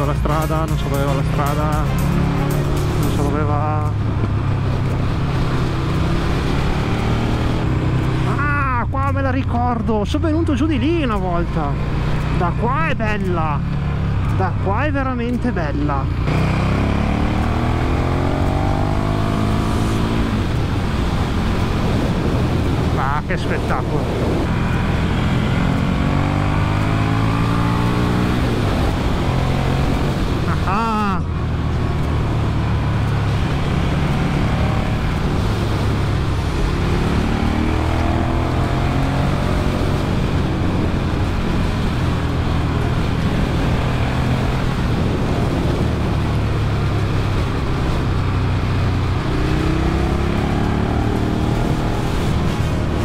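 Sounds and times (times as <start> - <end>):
motorcycle engine accelerating: 0.0 - 53.0
rushing wind noise: 0.0 - 53.0.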